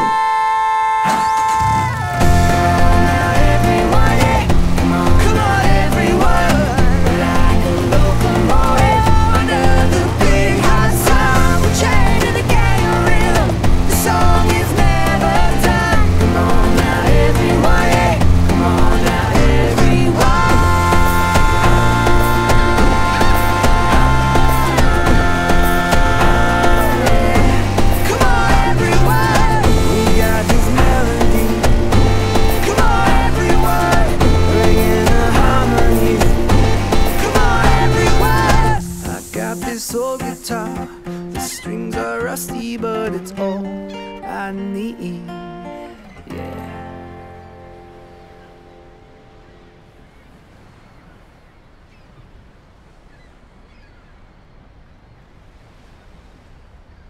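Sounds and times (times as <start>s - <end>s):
acoustic guitar: 0.0s - 50.1s
ukulele: 1.0s - 48.0s
wind noise on microphone: 1.6s - 40.6s
steady bass: 2.2s - 39.0s
wavering lead melody: 2.2s - 39.1s.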